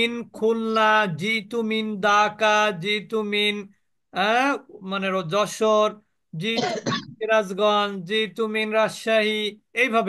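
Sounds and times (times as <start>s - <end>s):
man speaking: 0.0s - 10.0s
man clearing his throat: 6.5s - 7.2s.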